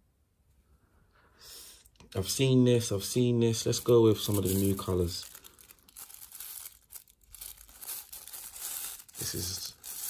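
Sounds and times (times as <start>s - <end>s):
paper wrapping rustling: 3.6s - 10.0s.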